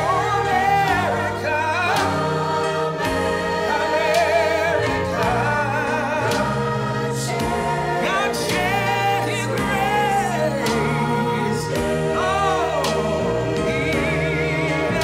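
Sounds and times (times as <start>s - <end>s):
instrumental held chords: 0.0s - 15.0s.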